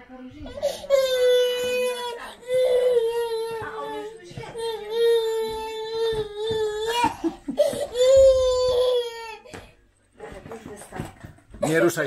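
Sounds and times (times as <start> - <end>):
toddler wailing: 0.6 - 9.5.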